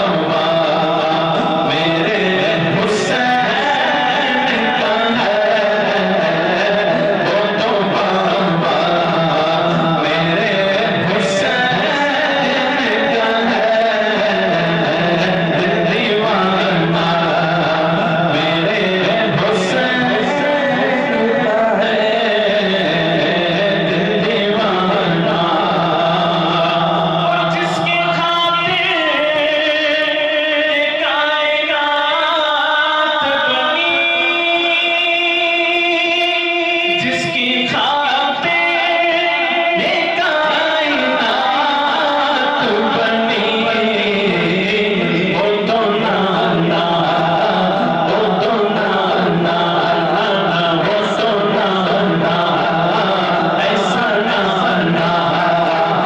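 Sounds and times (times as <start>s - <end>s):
man singing into microphone: 0.0s - 56.0s.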